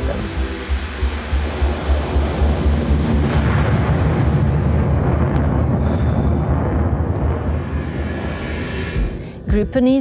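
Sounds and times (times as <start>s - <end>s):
jet engine roar: 0.0s - 9.5s
background music: 0.0s - 10.0s.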